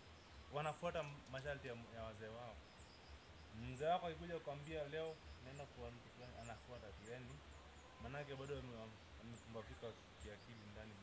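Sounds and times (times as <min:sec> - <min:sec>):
faint high chirps: 0:00.0 - 0:11.0
man talking: 0:00.5 - 0:02.6, 0:03.5 - 0:11.0.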